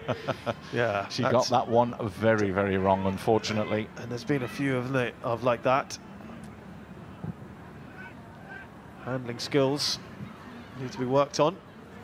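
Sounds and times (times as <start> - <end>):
crowd murmur: 0.0 - 12.0.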